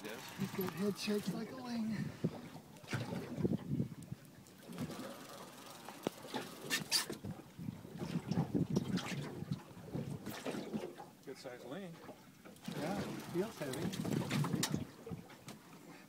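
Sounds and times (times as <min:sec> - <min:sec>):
water lapping against boat: 0:00.0 - 0:16.0.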